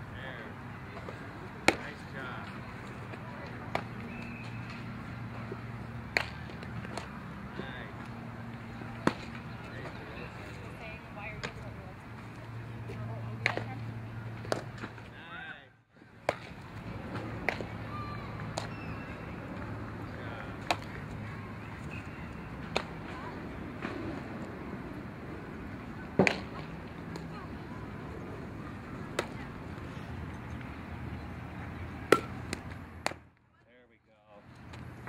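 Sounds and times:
low background noise: 0.0 - 35.0
bat cracking on softball: 3.1 - 7.2, 8.9 - 9.5, 14.4 - 15.0, 16.2 - 19.0, 20.6 - 21.2, 22.6 - 23.2, 26.1 - 27.3, 29.0 - 29.9, 32.0 - 33.3
softball impact smack: 6.1 - 7.1, 9.0 - 9.4, 16.2 - 16.6, 17.4 - 17.8, 20.6 - 21.0, 22.7 - 23.0, 26.2 - 27.2, 32.1 - 33.2.

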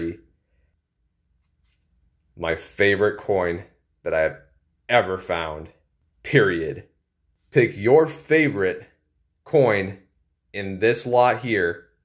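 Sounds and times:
man speaking: 0.0 - 0.3, 2.3 - 12.0.

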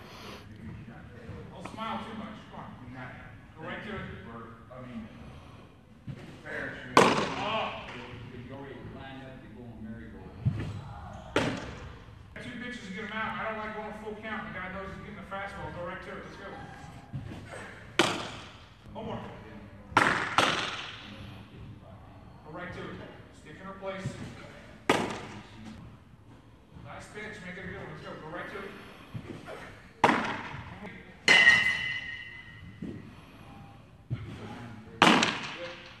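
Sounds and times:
baseball smacking into mitt: 7.0 - 7.5, 18.0 - 18.6, 20.0 - 21.0, 24.9 - 25.4, 35.0 - 36.0.

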